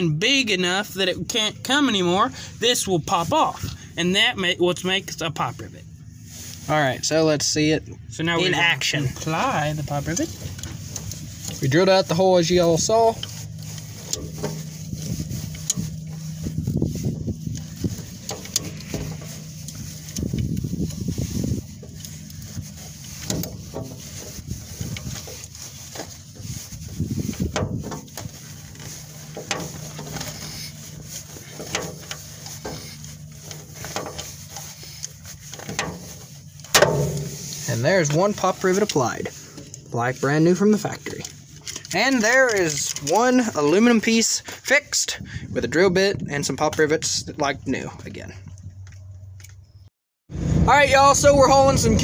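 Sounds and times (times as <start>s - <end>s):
steady low hum: 0.0s - 41.9s.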